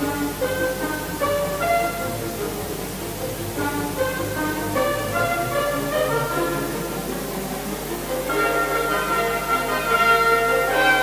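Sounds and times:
orchestra playing held chords: 0.0 - 11.0.

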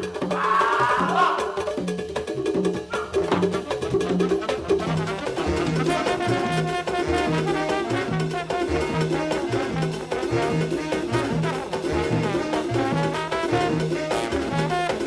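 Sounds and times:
big band mambo music: 0.0 - 15.0.

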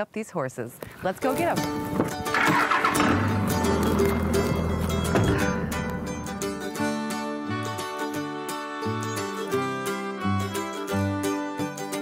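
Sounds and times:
background music: 1.3 - 12.0
truck engine starting and running: 1.6 - 8.2.

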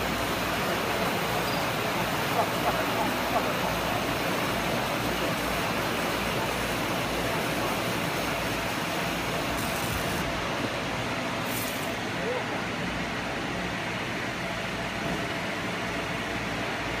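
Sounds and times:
cooling fan running: 0.0 - 17.0
brief hiss bursts: 11.4 - 12.0.

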